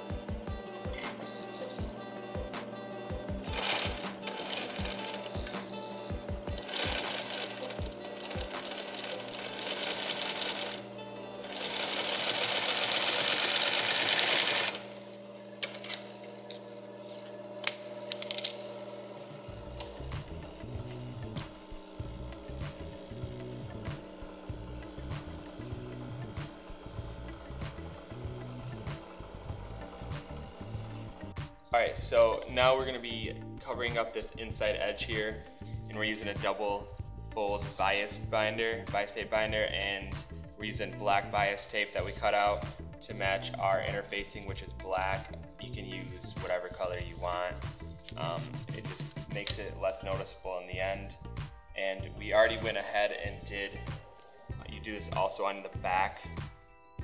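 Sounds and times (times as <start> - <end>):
background music: 0.0 - 57.0
sewing machine stitching: 3.4 - 16.2.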